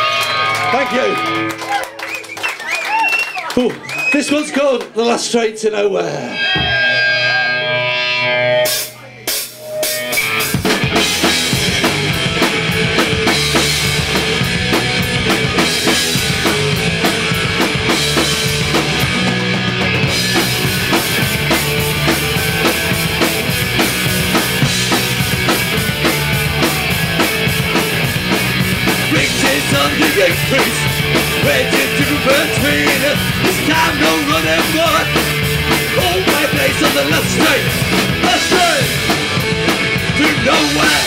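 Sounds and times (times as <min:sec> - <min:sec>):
bass guitar: 0:06.1 - 0:41.0
electric guitar: 0:06.3 - 0:41.0
live punk rock band: 0:06.3 - 0:41.0.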